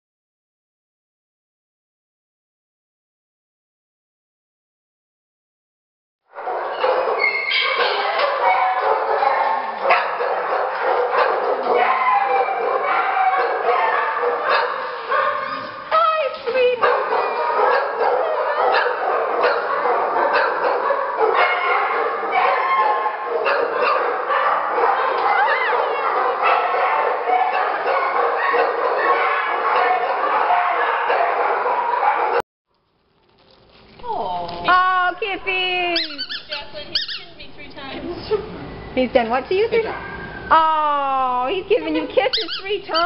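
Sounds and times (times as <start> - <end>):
dogs barking and yipping: 6.3 - 15.9, 16.5 - 32.4, 36.0 - 37.3, 39.5 - 40.5, 41.7 - 43.0.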